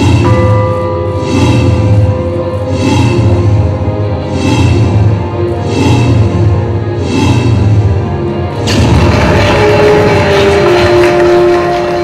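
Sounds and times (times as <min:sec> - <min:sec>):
sustained ringing tones: 0:00.0 - 0:12.0
audience applauding: 0:08.7 - 0:12.0.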